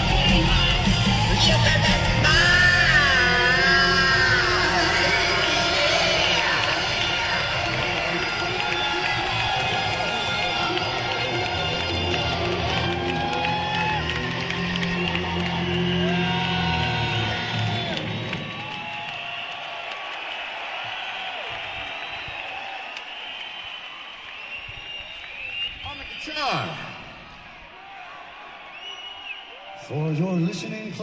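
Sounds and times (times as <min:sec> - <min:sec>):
crowd cheering and whooping: 0:00.0 - 0:30.2.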